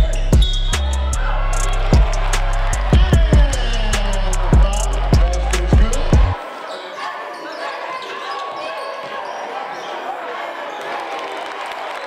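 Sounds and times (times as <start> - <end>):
music with heavy beat: 0.0 - 6.4
murmur of crowd voices: 0.0 - 12.0.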